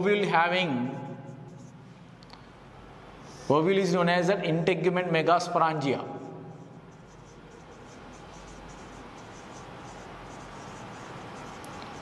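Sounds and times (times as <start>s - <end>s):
marker pen squeaking on whiteboard: 6.4s - 12.0s.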